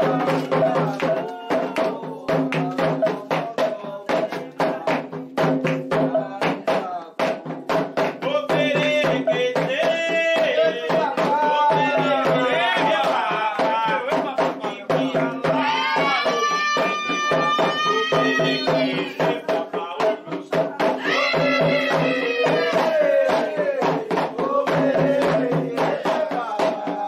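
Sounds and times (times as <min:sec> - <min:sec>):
hand drums playing fast rhythm: 0:00.0 - 0:27.0
voices singing: 0:00.0 - 0:27.0.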